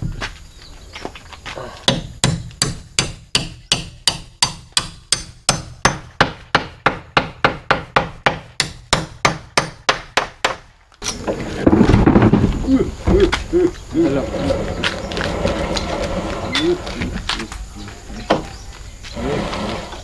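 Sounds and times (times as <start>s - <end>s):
claw hammer striking timber: 1.8s - 10.7s.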